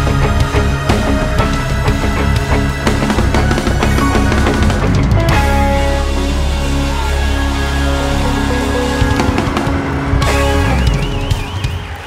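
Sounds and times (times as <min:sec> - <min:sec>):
heavy rock band: 0:00.0 - 0:12.0.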